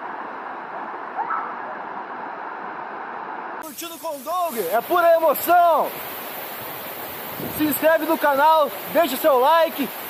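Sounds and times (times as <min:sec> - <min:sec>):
waterfall rushing: 0:03.6 - 0:10.0.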